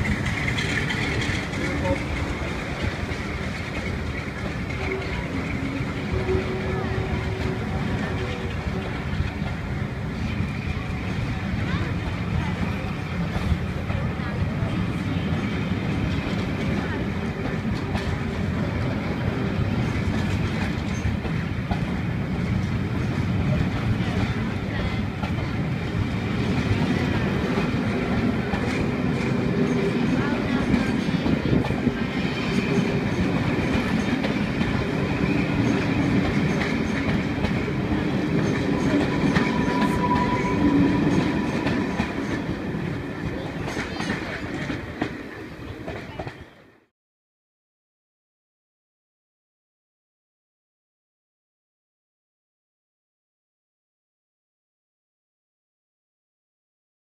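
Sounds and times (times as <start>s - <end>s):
train wheels clattering over rail joints: 0.0s - 6.6s, 26.4s - 45.2s
high squeal: 38.8s - 41.3s.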